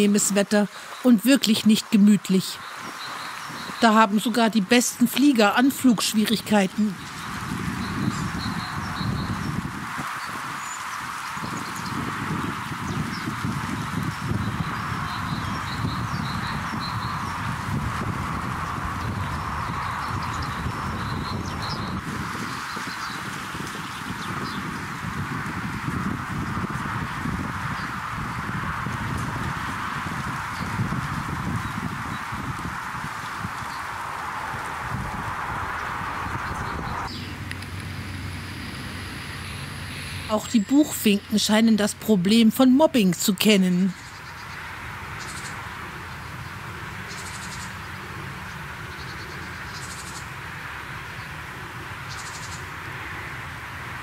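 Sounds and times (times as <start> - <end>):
wind buffeting microphone: 0.0 - 54.0
faint bird chirps: 2.0 - 4.3
steady hiss: 37.1 - 40.3.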